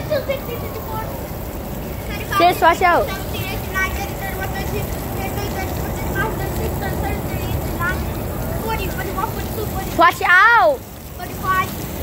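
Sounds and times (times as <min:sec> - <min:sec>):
faint distant voices: 0:00.0 - 0:11.8.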